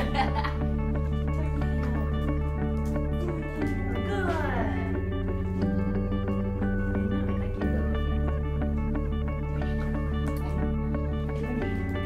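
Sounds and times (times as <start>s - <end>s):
guitar background music: 0.0s - 12.0s.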